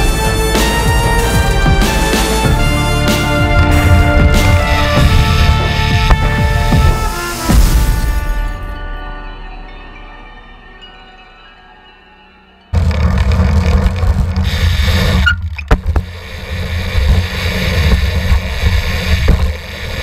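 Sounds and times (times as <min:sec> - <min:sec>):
music chord: 0:00.0 - 0:13.0.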